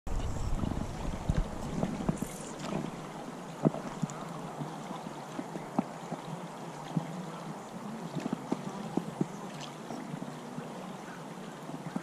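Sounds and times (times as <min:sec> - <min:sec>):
wind rumble on microphone: 0:00.1 - 0:07.2
creek water running over riffles: 0:00.1 - 0:12.0.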